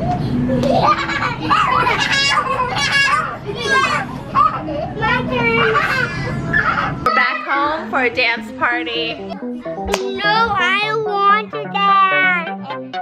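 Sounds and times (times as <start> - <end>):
children chattering and shrieking: 1.4 - 7.8.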